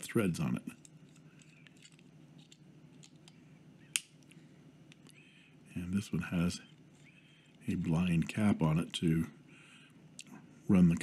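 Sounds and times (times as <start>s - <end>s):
pen handling ticks: 0.8s - 5.2s.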